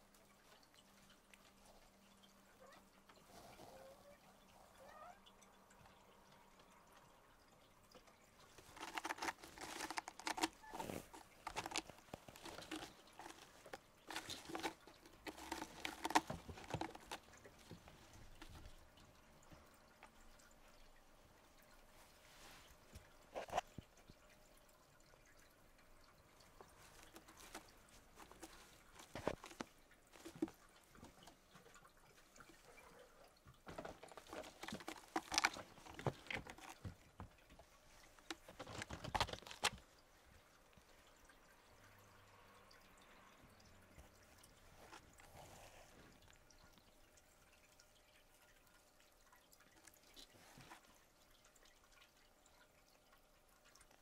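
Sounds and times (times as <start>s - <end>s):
claws scratching and rustling: 8.4s - 19.1s, 26.6s - 40.1s.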